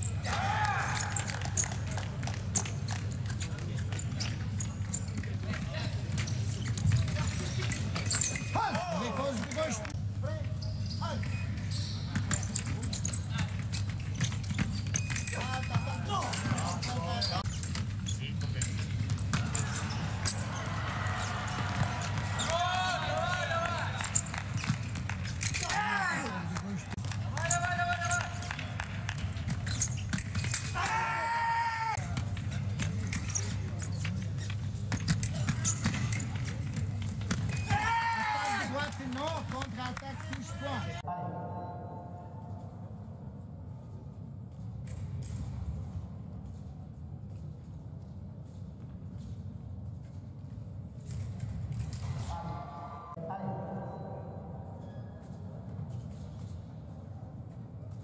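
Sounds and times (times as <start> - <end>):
fencing footwork: 0.0 - 41.0
fencers shouting: 30.7 - 32.0.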